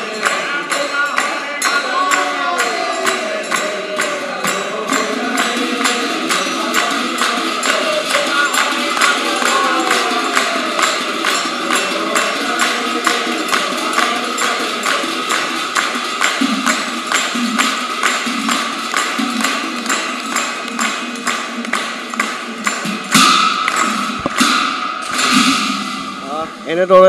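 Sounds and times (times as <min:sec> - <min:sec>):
men chanting together: 0:00.0 - 0:15.6
hand claps: 0:00.0 - 0:26.2
small hand cymbals: 0:00.0 - 0:26.7.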